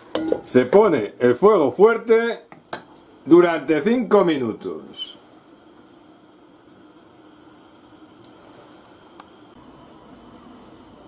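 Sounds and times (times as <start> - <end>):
covered pan hissing: 0.0 - 11.0.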